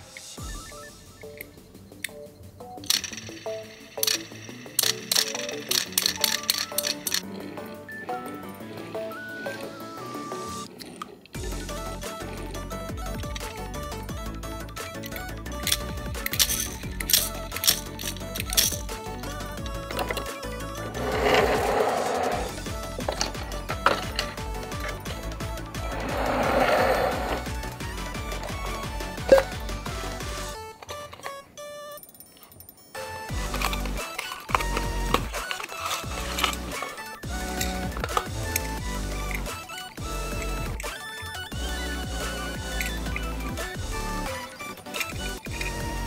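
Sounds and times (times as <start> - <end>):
background music: 0.0 - 46.0
toy truck click into place: 2.8 - 7.3, 33.3 - 40.0
metal toy truck clicking: 2.8 - 11.4, 12.0 - 45.8.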